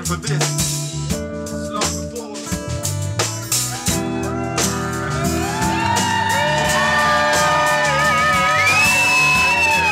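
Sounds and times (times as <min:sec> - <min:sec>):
bass guitar: 0:00.0 - 0:09.9
live band playing: 0:00.0 - 0:09.9
crowd whooping and shouting: 0:03.6 - 0:09.9.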